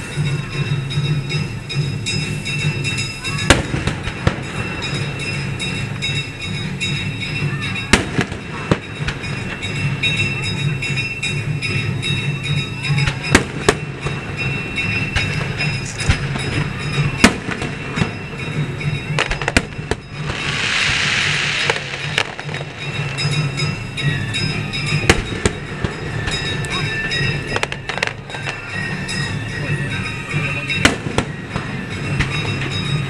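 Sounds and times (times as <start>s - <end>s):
firework bangs: 3.4s - 10.2s, 13.0s - 29.4s, 30.3s - 33.0s
rushing hiss: 8.5s - 33.0s.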